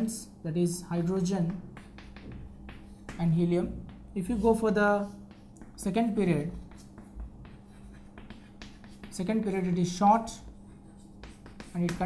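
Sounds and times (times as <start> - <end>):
steady low hum: 0.0 - 12.0
chalk scratching on chalkboard: 1.0 - 12.0.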